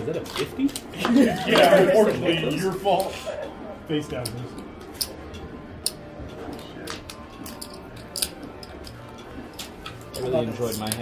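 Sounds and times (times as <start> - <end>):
murmur of voices: 0.0 - 8.7.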